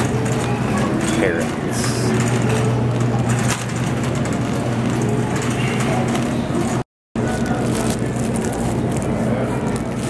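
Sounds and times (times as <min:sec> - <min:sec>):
shopping cart wheels rattling: 0:00.0 - 0:10.0.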